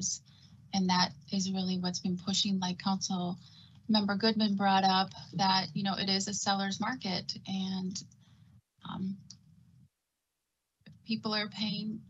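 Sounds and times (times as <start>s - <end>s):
woman speaking: 0.8s - 8.0s, 8.9s - 9.2s, 11.1s - 12.0s.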